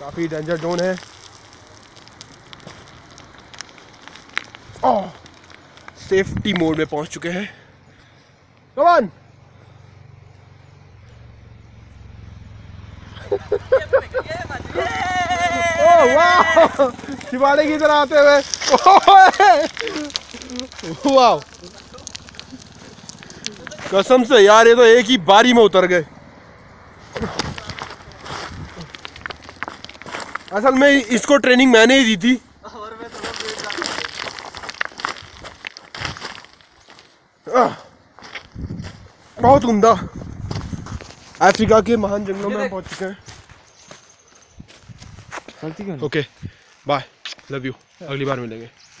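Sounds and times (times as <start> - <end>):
footsteps on gravel: 0.0 - 6.8, 16.2 - 24.8, 27.0 - 37.2, 38.1 - 49.0
person shouting: 14.2 - 17.2.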